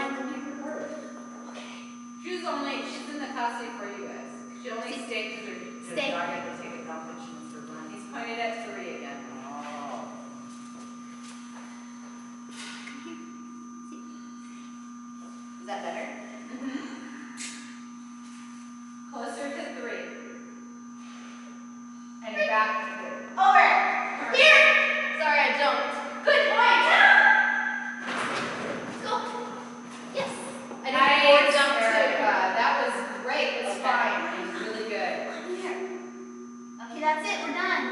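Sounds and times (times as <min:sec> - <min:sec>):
steady hum: 0:00.0 - 0:37.9.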